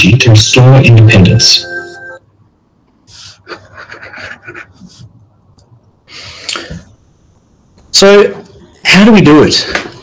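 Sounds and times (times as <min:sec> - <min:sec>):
background music: 0:01.4 - 0:02.2
breathy puffs of air: 0:06.0 - 0:07.0.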